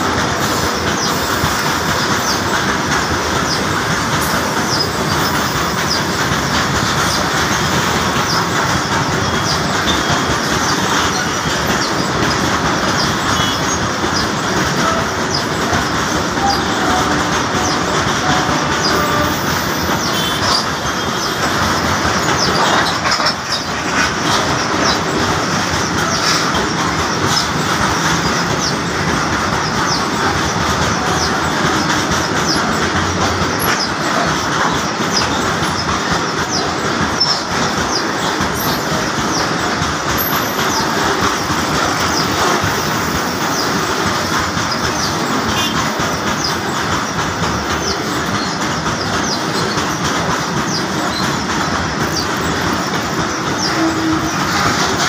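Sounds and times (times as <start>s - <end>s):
high-pitched wheel squeals: 0.0s - 55.0s
train wheels rumbling over rails: 0.0s - 55.0s.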